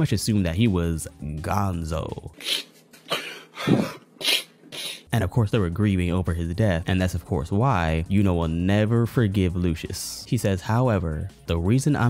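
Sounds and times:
man sobbing: 2.4 - 4.5.

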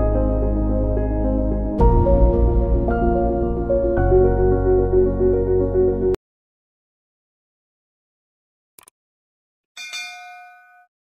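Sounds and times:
notification bell ding: 9.8 - 10.9.

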